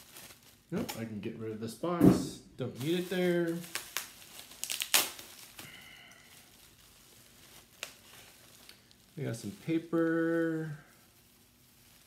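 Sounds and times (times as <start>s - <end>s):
bubble wrap crinkling: 0.0s - 1.9s, 2.6s - 12.0s
faint plastic rustling: 0.0s - 12.0s.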